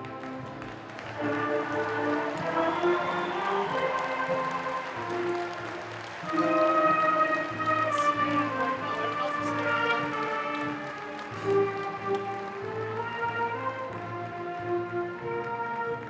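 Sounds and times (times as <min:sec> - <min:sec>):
concert band playing chords: 0:00.8 - 0:13.6.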